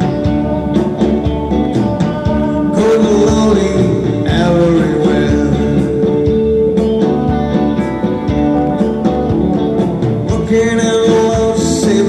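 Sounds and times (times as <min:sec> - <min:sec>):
bass guitar: 0:00.0 - 0:12.0
electric guitars: 0:00.0 - 0:12.0
steady drum beat: 0:00.0 - 0:12.0.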